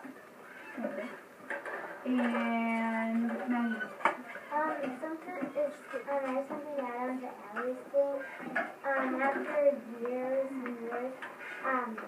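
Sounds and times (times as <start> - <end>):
child talking: 2.1 - 3.8, 4.5 - 12.0.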